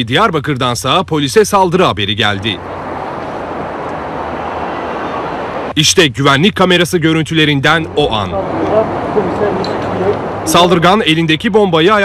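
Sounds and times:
outdoor background rush: 0:00.0 - 0:12.0.

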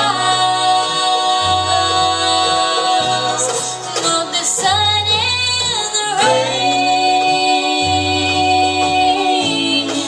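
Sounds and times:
acoustic guitar: 0:00.0 - 0:10.0
banjo: 0:00.0 - 0:10.0
female lead vocal: 0:00.0 - 0:10.0
mandolin: 0:00.0 - 0:10.0.

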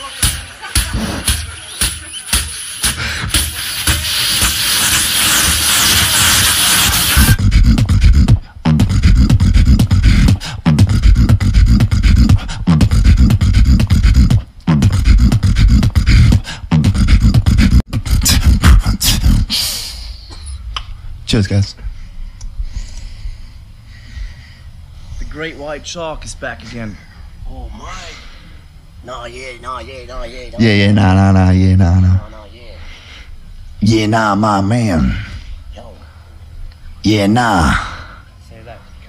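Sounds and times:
person beatboxing: 0:00.0 - 0:20.6.

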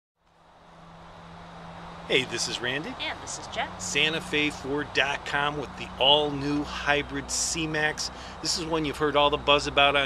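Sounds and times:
low steady hum: 0:00.3 - 0:10.0.

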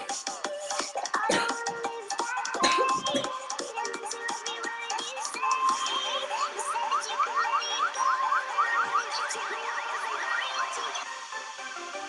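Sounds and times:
electronic music with synth sweeps: 0:00.0 - 0:12.0.

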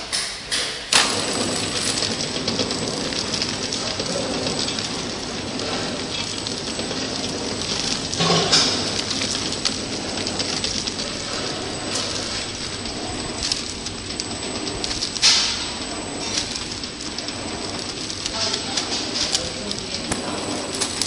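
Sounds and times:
wrapping machine hiss and clatter: 0:00.0 - 0:21.0.

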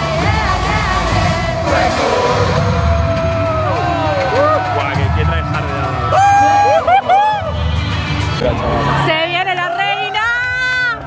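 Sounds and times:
pop song over loudspeakers: 0:00.0 - 0:11.0.

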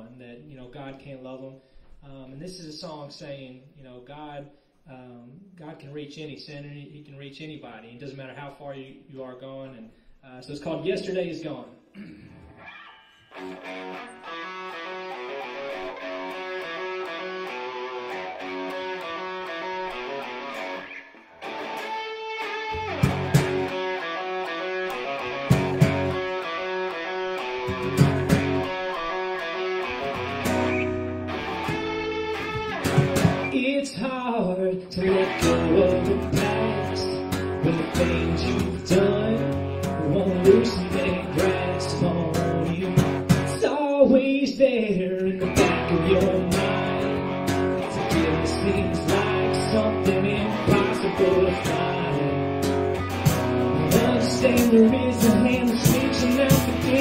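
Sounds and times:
guitar playing: 0:12.3 - 0:33.8, 0:34.9 - 0:43.7, 0:45.3 - 0:57.0
rock band playing: 0:12.6 - 0:33.6, 0:35.1 - 0:43.6, 0:45.4 - 0:57.0
heavy low notes: 0:22.8 - 0:33.6, 0:45.4 - 0:57.0
sharp drum hits: 0:32.8 - 0:33.5.

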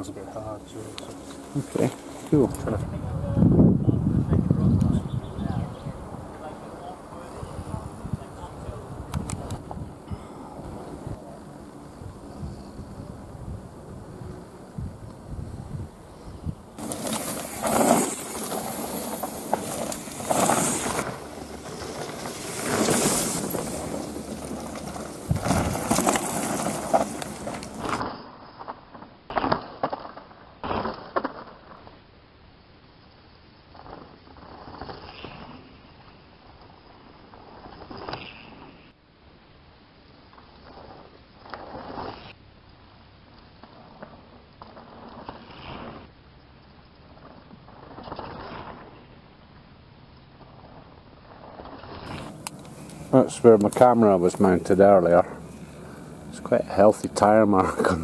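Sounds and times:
bike tyres rushing over dirt and stones: 0:14.6 - 0:31.9, 0:50.3 - 0:58.0
bike clicks and rattles: 0:16.8 - 0:28.1.

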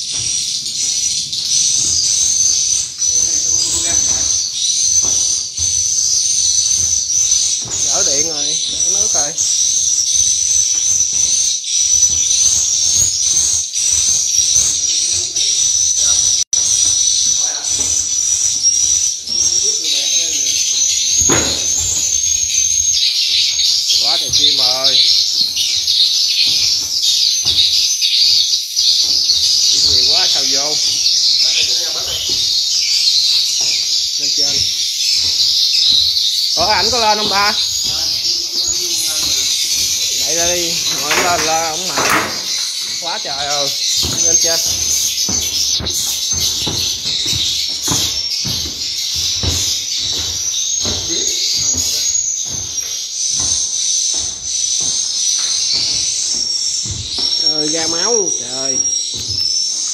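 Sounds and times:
swiftlets twittering: 0:00.0 - 0:10.0, 0:11.9 - 0:55.0, 0:55.8 - 0:59.9.

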